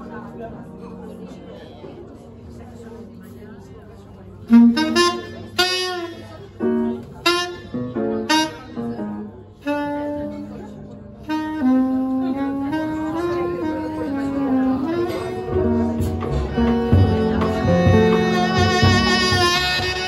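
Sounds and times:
double bass: 4.5s - 6.1s, 11.4s - 20.0s
jazz trumpet solo: 4.5s - 20.0s.

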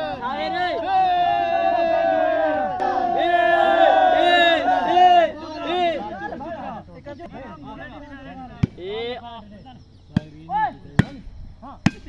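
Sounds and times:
men shouting: 0.0s - 9.2s.

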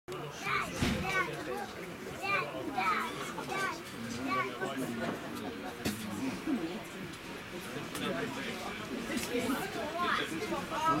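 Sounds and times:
children chattering and calling: 0.1s - 11.0s.

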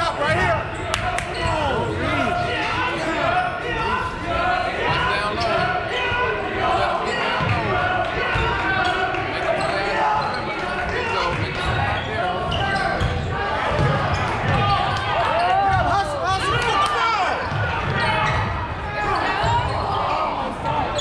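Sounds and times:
overlapping voices echoing: 0.0s - 21.0s
basketball bouncing on court: 11.3s - 15.0s.

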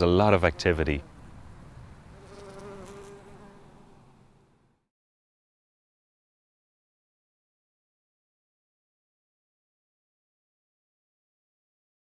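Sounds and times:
bumblebee buzzing: 2.1s - 4.8s.

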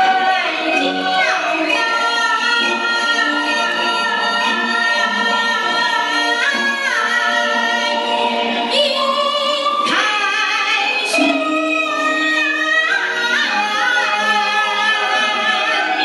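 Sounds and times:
woman singing opera into microphone: 0.0s - 16.0s.

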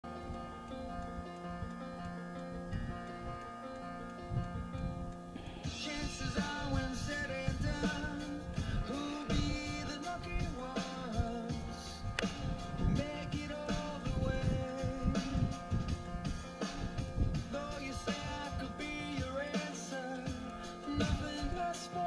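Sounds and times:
background music with steady beat: 0.0s - 22.0s.

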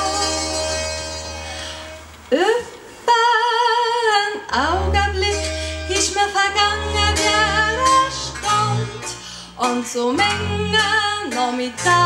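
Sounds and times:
double bass notes: 0.0s - 2.3s, 4.5s - 12.0s.

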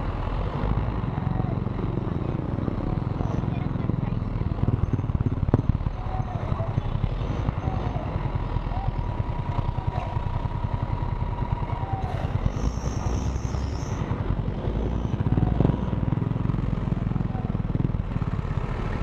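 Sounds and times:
scooter engine idling: 0.0s - 19.0s
street traffic: 0.0s - 19.0s.

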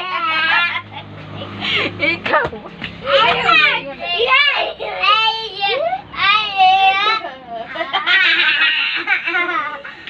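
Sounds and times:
children squealing and calling out: 0.0s - 1.0s.

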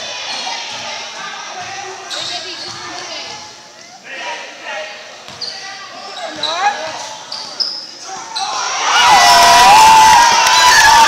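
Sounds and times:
sneakers squeaking on gym floor: 1.6s - 3.6s, 5.3s - 8.6s
crowd shouting loudly: 8.3s - 11.0s.

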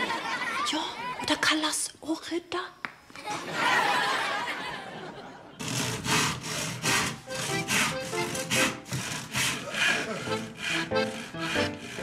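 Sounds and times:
handsaw cutting wood: 5.6s - 12.0s.

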